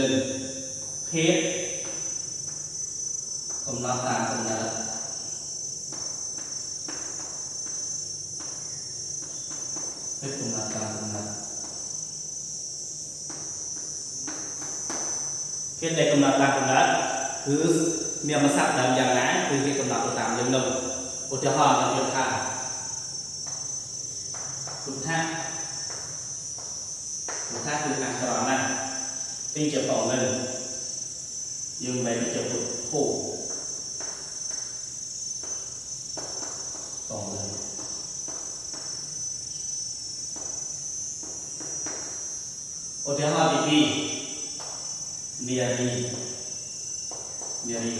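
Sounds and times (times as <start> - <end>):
insect chirring: 0.0 - 47.9
man talking: 10.2 - 11.4, 37.1 - 37.7.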